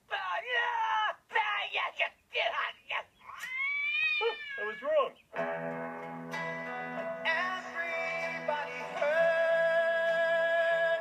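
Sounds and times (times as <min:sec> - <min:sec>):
cartoon cat yowling: 0:03.3 - 0:05.0
cat crying: 0:03.3 - 0:05.1
music with sustained chords: 0:05.4 - 0:09.7.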